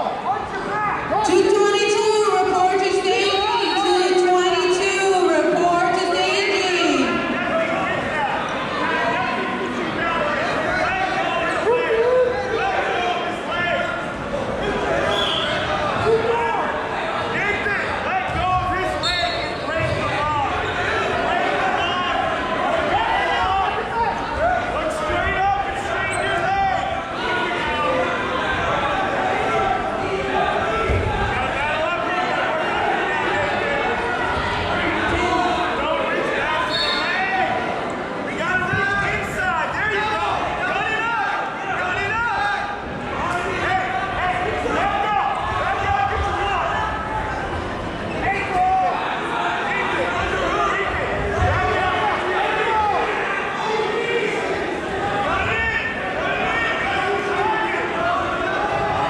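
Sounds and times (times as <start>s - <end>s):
voices shouting in echoing gym: 0.0s - 59.0s.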